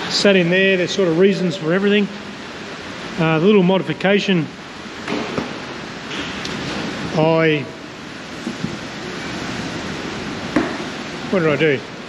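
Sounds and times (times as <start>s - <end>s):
heavy rain on metal roof: 0.0s - 12.0s.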